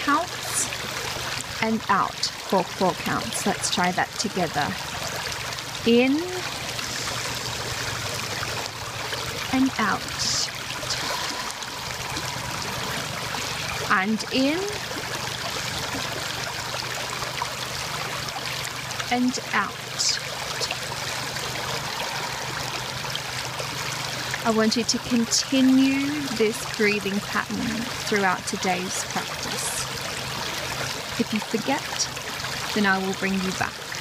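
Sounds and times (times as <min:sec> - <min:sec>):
creek water flowing over stones: 0:00.0 - 0:34.0.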